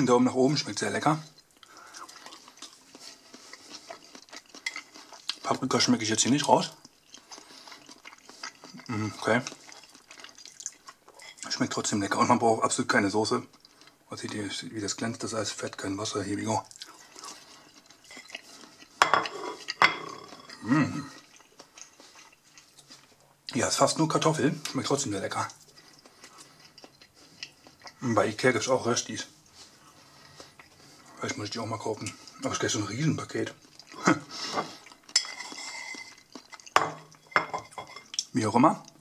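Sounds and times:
chewing crisp food: 0:00.5 - 0:37.3
fork scraping a plate: 0:17.3 - 0:20.6, 0:34.5 - 0:38.1.

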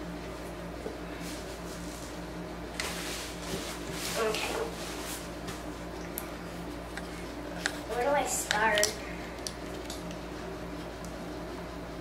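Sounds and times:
wet chewing clicks: 0:08.5 - 0:10.2.

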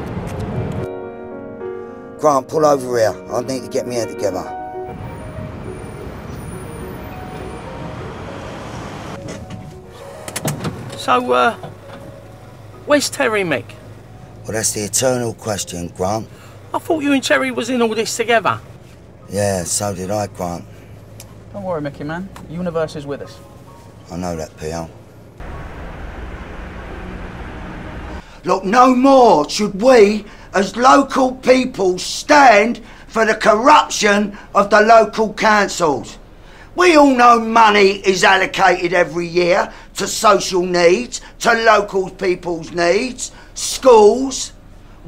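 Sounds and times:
road traffic rumble: 0:02.6 - 0:45.0
car cabin hum: 0:24.4 - 0:28.2.

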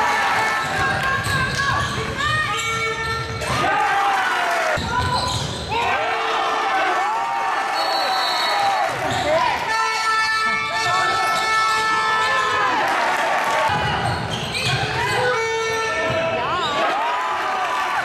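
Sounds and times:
voices in a hall: 0:00.0 - 0:18.0
sneakers squeaking on floor: 0:00.6 - 0:03.5, 0:04.8 - 0:05.7, 0:13.7 - 0:16.8.

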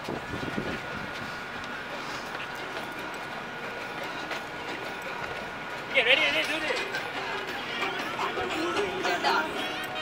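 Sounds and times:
continuous city rush: 0:00.0 - 0:10.0.

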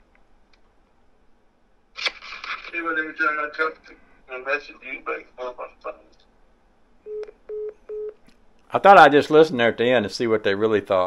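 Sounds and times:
short phone beeps: 0:07.1 - 0:08.2.

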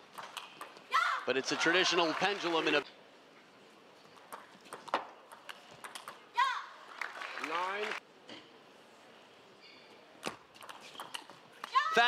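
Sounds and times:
high-pitched shout: 0:00.9 - 0:01.3.

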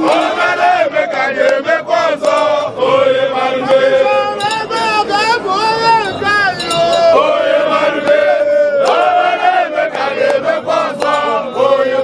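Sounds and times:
group of voices chanting: 0:00.0 - 0:05.2, 0:06.7 - 0:12.0.

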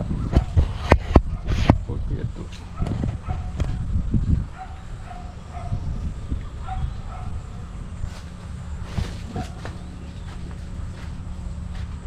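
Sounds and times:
low rumble: 0:00.0 - 0:12.0
dog barking: 0:02.8 - 0:03.6, 0:04.5 - 0:05.8, 0:06.6 - 0:07.4, 0:09.3 - 0:09.7.

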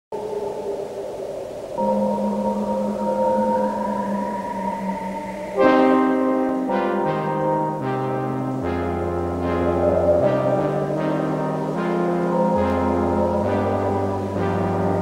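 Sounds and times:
slowly rising tone: 0:00.1 - 0:07.8, 0:08.6 - 0:15.0
brass theme music: 0:05.6 - 0:15.0.

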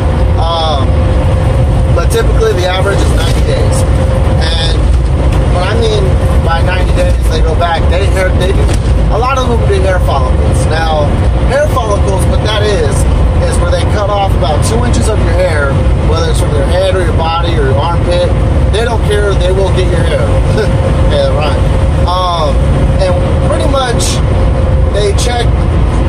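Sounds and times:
truck engine and road rumble: 0:00.0 - 0:26.0
man talking: 0:00.3 - 0:01.0, 0:01.9 - 0:04.9, 0:05.5 - 0:25.6.

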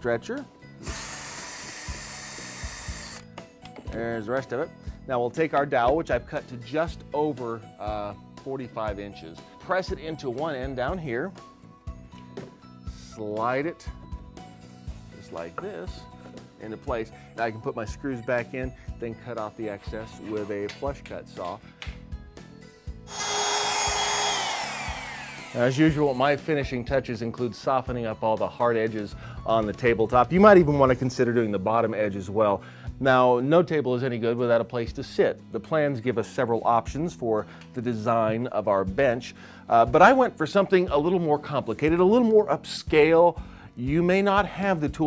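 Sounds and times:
trim router high whine: 0:00.8 - 0:03.2, 0:23.1 - 0:26.2
cordless drill running: 0:00.8 - 0:03.3, 0:23.1 - 0:26.4.

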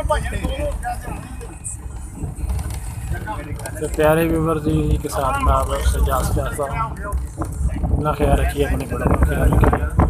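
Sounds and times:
faint passenger voices: 0:00.0 - 0:10.0
van engine and road rumble: 0:00.0 - 0:10.0.

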